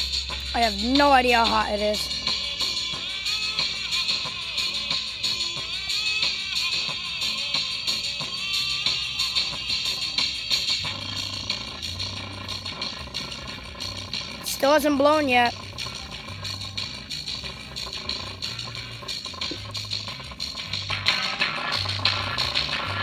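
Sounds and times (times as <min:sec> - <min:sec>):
low bass notes: 0:00.0 - 0:04.9, 0:08.7 - 0:23.0
distorted music through tiny speaker: 0:00.0 - 0:23.0.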